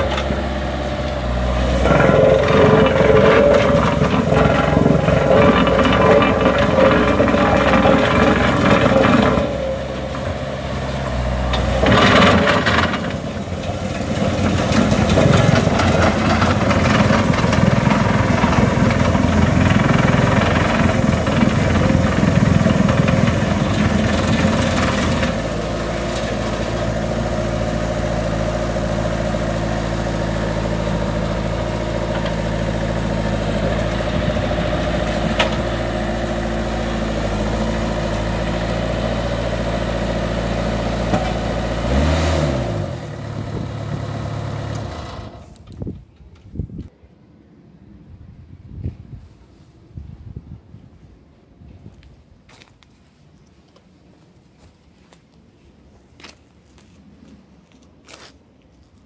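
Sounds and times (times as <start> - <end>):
roller engine running rough: 0.0 - 45.8.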